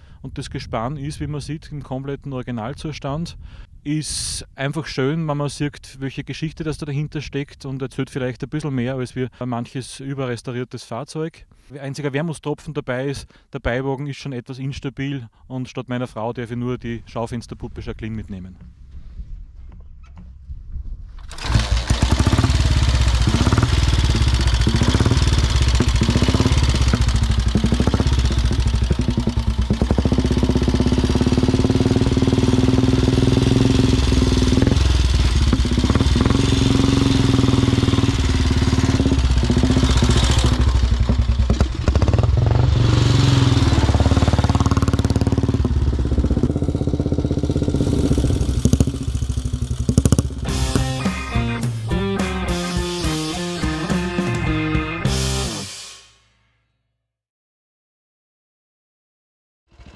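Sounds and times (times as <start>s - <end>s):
motorcycle engine running loudly: 21.3s - 55.8s.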